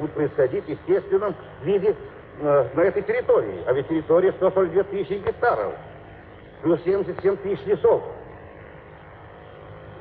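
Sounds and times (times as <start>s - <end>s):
recording hum and hiss: 0.0s - 10.0s.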